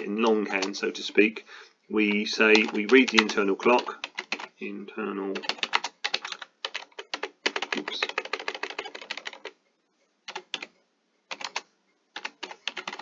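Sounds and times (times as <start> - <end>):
typing on computer keyboard: 2.5 - 4.5, 5.4 - 9.6, 10.3 - 10.7, 11.3 - 13.0.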